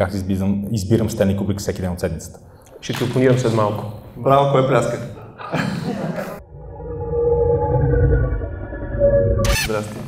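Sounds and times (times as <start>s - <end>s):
deep low rumble: 6.4s - 9.6s.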